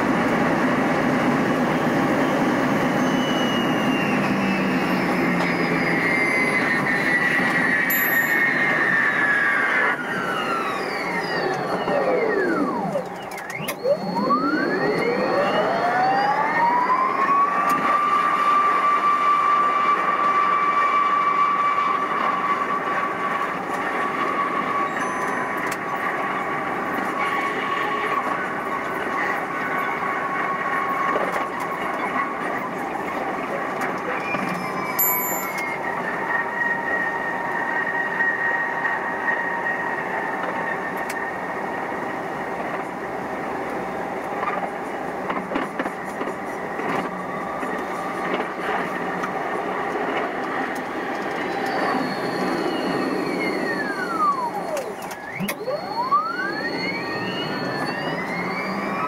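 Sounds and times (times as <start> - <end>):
train wheels rumbling on track: 0.0 - 13.6, 17.2 - 55.4
traction motor whine: 0.0 - 59.0
click: 13.0 - 13.8.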